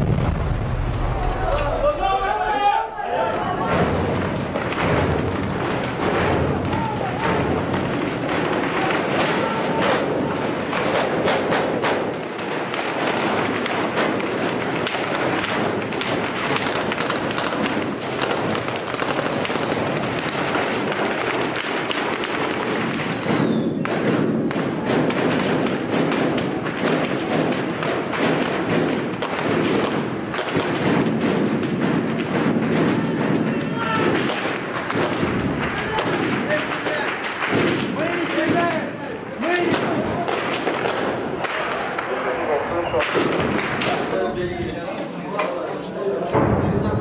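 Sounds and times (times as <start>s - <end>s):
gunfire crackle: 0.0s - 42.4s, 43.0s - 45.4s.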